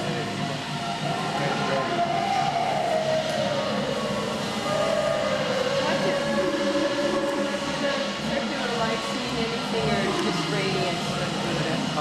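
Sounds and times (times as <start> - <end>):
background hubbub: 0.0 - 12.0
people talking indistinctly: 0.0 - 12.0.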